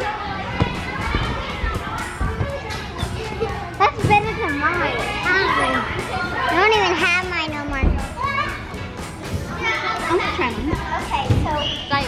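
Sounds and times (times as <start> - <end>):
children chattering and squealing: 0.0 - 12.0.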